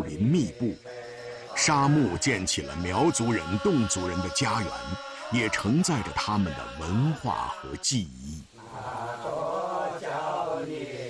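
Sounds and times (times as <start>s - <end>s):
women singing in unison: 0.0s - 7.8s, 8.6s - 11.0s.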